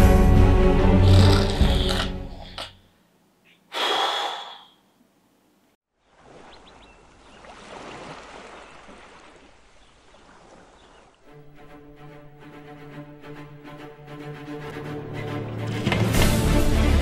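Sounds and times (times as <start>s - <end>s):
calm sea waves: 5.9s - 13.6s.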